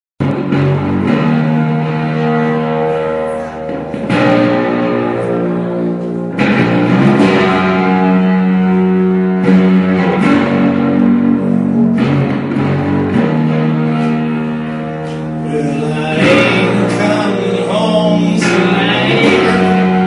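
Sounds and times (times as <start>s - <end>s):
electric guitar chords ringing: 0.2s - 20.0s.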